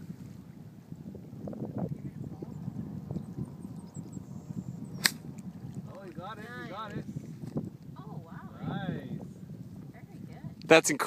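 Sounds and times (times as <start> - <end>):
gusty wind buffeting microphone: 0.0 - 11.0.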